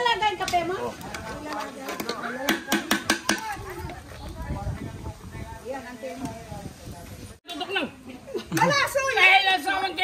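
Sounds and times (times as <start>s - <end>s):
voices talking: 0.0s - 10.0s.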